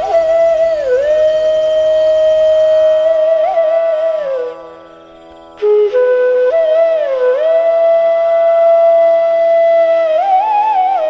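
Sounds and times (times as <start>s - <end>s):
flute long held note: 0.0s - 11.0s.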